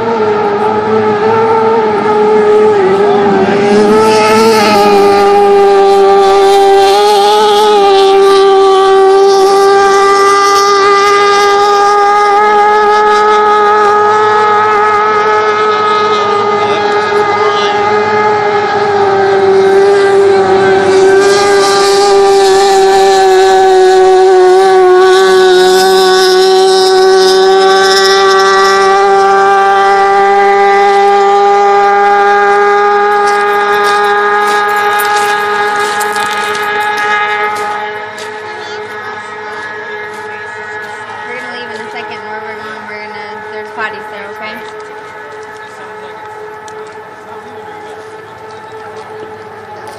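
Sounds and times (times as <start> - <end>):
racing boat engine whine: 0.0 - 49.9.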